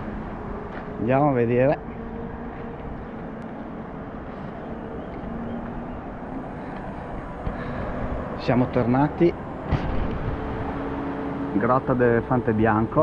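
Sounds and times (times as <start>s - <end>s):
rushing background noise: 0.0s - 13.0s.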